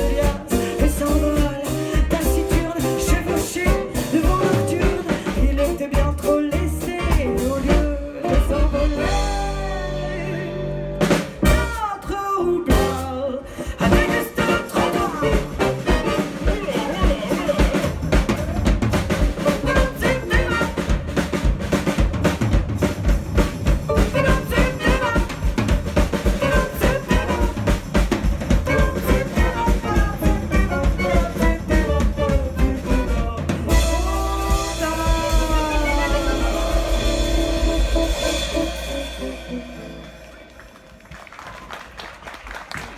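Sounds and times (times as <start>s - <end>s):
drum kit playing quick beat: 0.0s - 10.1s, 11.0s - 11.9s, 12.7s - 13.1s, 13.8s - 42.9s
double bass: 0.0s - 41.4s.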